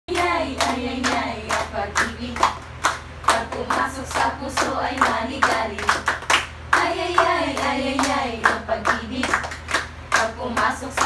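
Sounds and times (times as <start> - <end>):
voices singing along: 0.1 - 11.0
women clapping in rhythm: 0.1 - 11.0.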